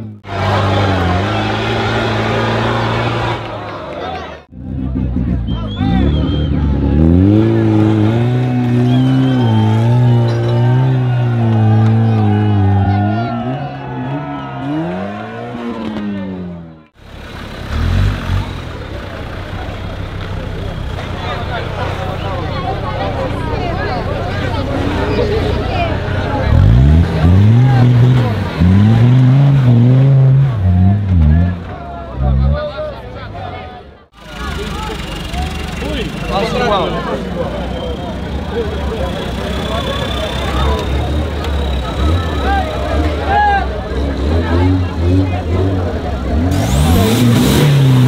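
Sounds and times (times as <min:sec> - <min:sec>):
crowd chattering and shouting: 0:00.0 - 0:48.0
off-road engines revving hard: 0:00.0 - 0:48.0.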